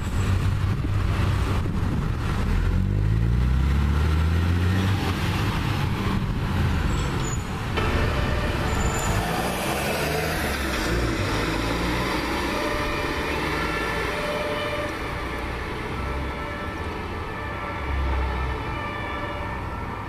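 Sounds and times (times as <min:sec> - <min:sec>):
car engines approaching: 0:00.0 - 0:18.7
fire truck diesel engine: 0:00.0 - 0:20.0.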